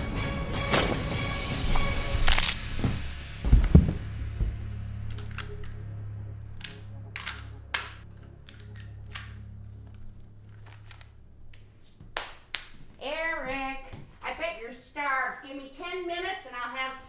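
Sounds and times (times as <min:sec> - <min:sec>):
low film score drone: 0:01.9 - 0:11.7
heavy low thumps: 0:02.6 - 0:05.1
pistol clicking: 0:05.0 - 0:05.9, 0:06.6 - 0:11.6.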